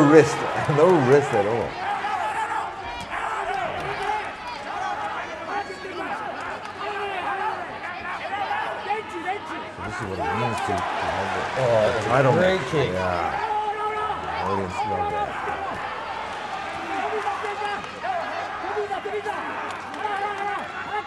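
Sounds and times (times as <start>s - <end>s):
arena crowd noise: 0.0s - 21.0s
scattered applause: 0.0s - 21.0s
men calling out: 9.7s - 16.0s.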